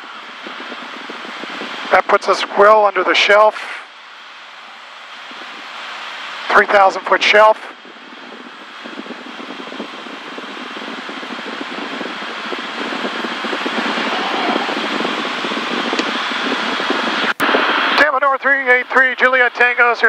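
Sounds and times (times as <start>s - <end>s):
aircraft cabin engine and airflow noise: 0.0s - 20.0s
man's voice: 1.9s - 3.8s, 6.5s - 7.7s, 18.0s - 20.0s.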